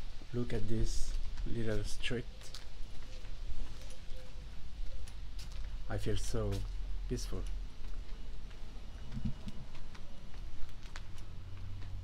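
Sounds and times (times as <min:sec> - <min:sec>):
footsteps on stone pavement: 0:00.0 - 0:12.0.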